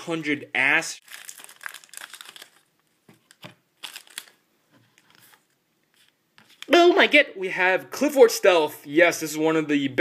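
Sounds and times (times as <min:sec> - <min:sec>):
foil wrapper crinkling: 0:01.0 - 0:04.4
trading cards rustling: 0:01.0 - 0:04.4.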